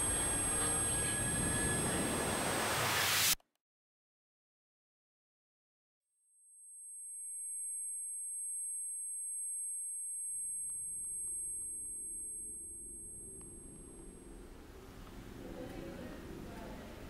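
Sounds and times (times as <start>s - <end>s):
high-pitched ringing tone: 0.0s - 3.3s, 6.1s - 15.5s.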